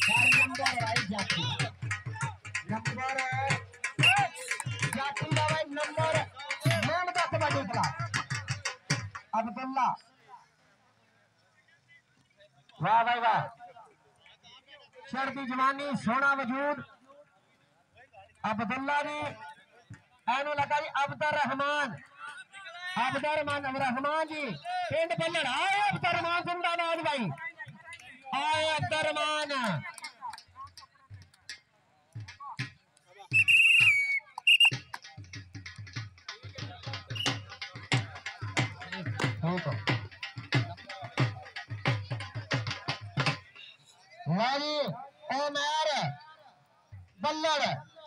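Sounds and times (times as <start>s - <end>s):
referee whistle blasts: 0.0s - 0.8s, 4.0s - 5.0s, 6.6s - 6.9s, 33.3s - 34.9s, 37.2s - 37.5s
man shouting a drawn-out call: 0.0s - 1.7s, 3.4s - 7.1s.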